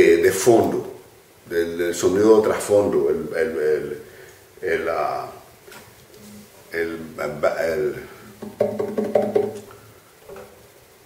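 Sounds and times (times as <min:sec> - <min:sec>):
acoustic guitar strums: 0:08.3 - 0:09.8.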